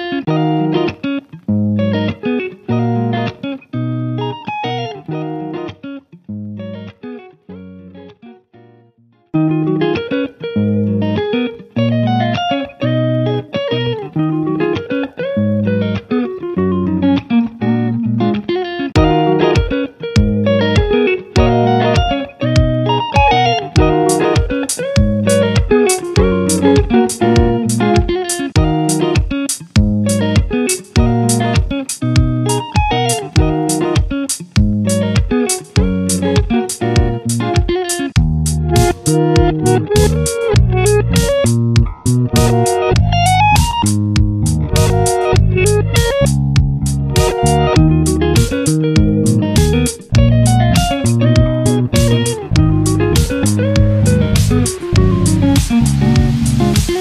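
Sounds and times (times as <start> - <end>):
plucked-string melody: 0.0 - 57.0
steady percussive beat: 19.0 - 57.0.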